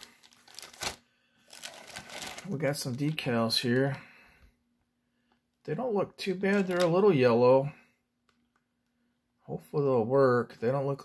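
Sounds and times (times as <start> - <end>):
plastic bag crinkling: 0.0 - 4.0, 6.5 - 7.1.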